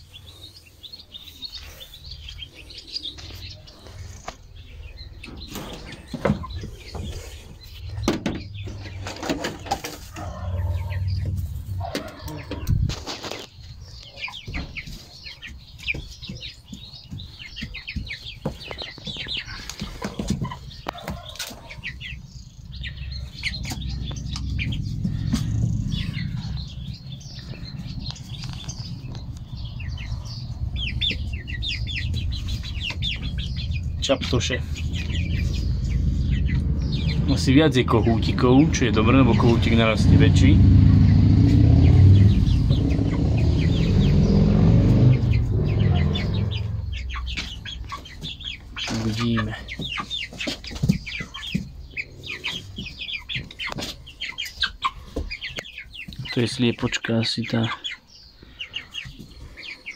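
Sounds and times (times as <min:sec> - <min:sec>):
chicks peeping: 0:00.0 - 0:59.9
low rumble: 0:06.5 - 0:13.2, 0:22.0 - 0:48.7.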